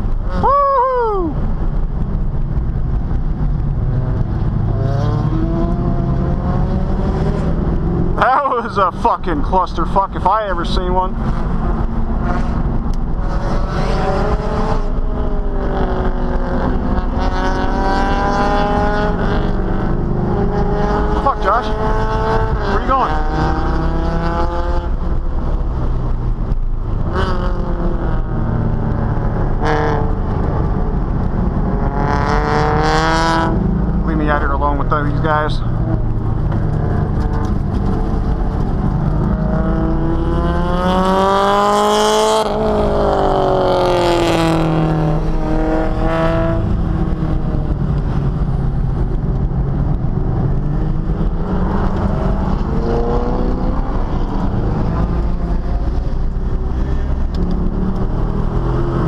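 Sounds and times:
car engine revving: 0.0 - 59.0.

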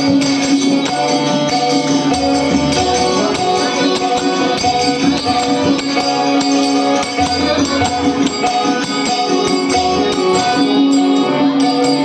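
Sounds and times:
harmonium sustained notes: 0.0 - 12.0
tabla strokes: 0.0 - 12.0.

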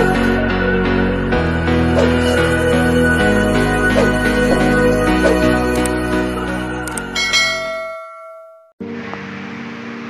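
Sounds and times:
bell chime ringing: 6.9 - 8.8.

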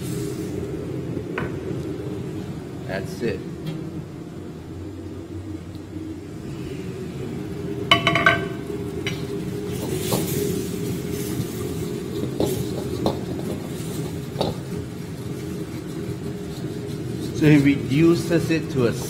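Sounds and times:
sauce bubbling and sizzling: 0.0 - 2.6, 6.4 - 19.0.

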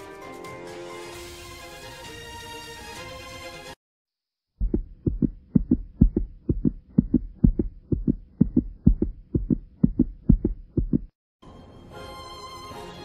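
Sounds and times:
heartbeat double thump: 4.6 - 11.2.

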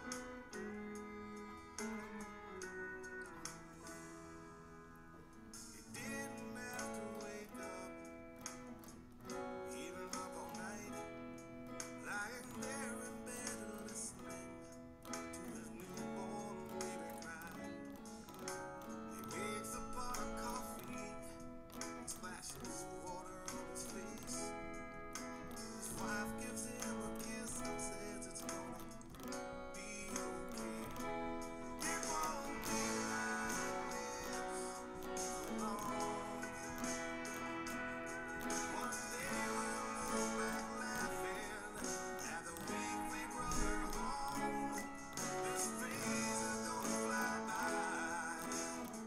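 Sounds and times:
electric guitar playing chords: 0.0 - 49.0.

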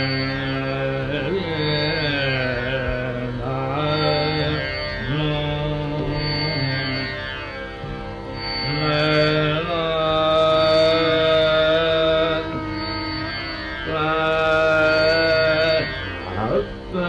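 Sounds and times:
man singing slow held notes: 0.0 - 7.2
tanpura drone: 0.0 - 17.0.

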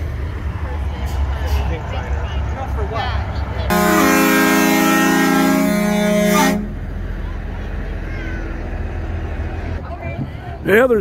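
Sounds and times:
low engine rumble: 0.0 - 11.0
truck air horn blast: 3.7 - 6.8.

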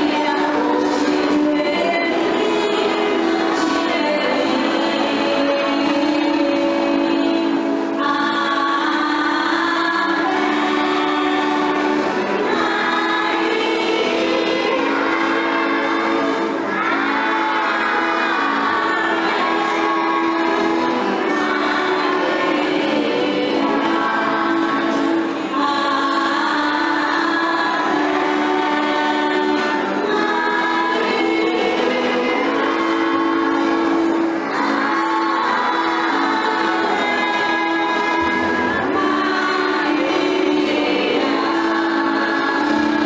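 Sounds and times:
group singing a hymn: 0.0 - 43.0
steady held accompaniment notes: 0.0 - 43.0.

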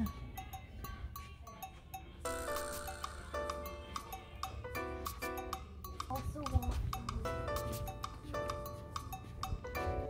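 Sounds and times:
plucked notes over ticking beat: 2.2 - 10.0.

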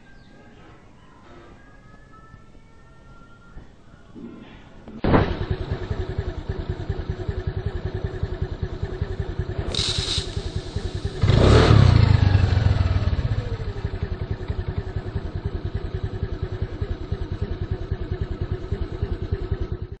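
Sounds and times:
small engine idling and revving: 5.2 - 20.0.

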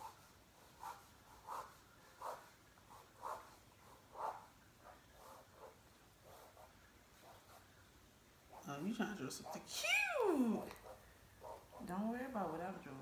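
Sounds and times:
pen scratching on paper: 0.0 - 7.7.

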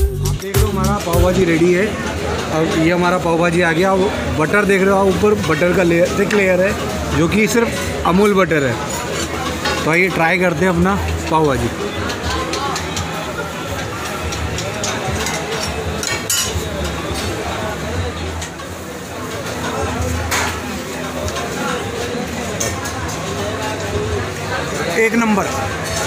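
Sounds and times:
background chatter: 0.0 - 26.0
metallic clinks of utensils: 5.1 - 17.5.

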